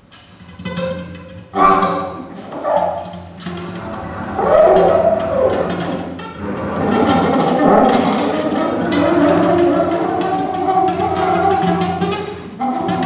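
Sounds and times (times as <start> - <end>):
sliding wavering low tones: 1.6 - 13.0.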